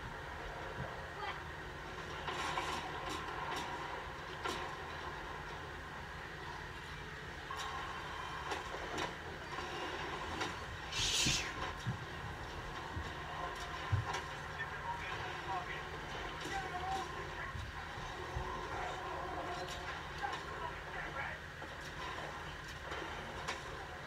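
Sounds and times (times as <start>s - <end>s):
low room rumble: 0.0s - 24.0s.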